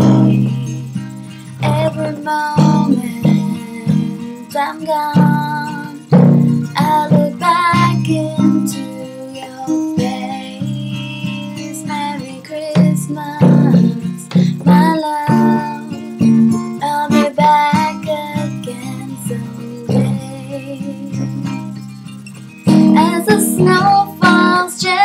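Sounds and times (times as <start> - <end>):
woman singing: 0.0 - 21.9, 22.7 - 25.0
acoustic guitar strumming: 0.0 - 25.0.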